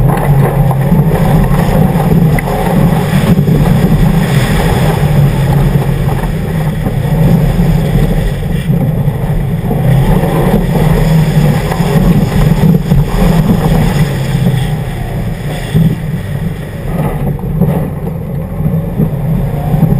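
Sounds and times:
car engine running hard: 0:00.0 - 0:19.9.

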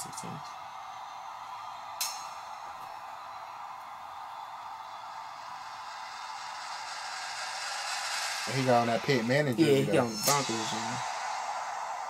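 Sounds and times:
thin music playback: 0:00.0 - 0:12.0
sharp click: 0:02.0 - 0:02.3.

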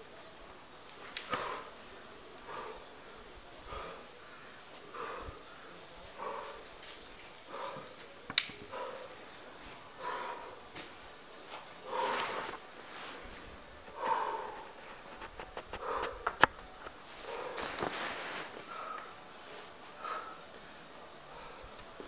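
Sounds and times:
person breathing hard: 0:01.3 - 0:01.8, 0:02.4 - 0:06.8, 0:07.4 - 0:08.1, 0:09.9 - 0:10.8, 0:11.8 - 0:16.5, 0:17.1 - 0:22.0.

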